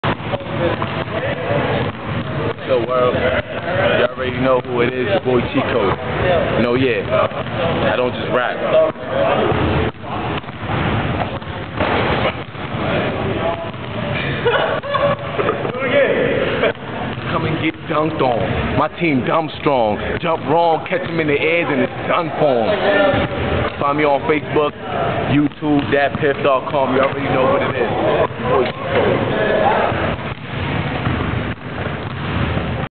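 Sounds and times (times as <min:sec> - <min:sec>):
indistinct voices: 0:00.0 - 0:30.4
loud steady rumbling: 0:00.0 - 0:32.9.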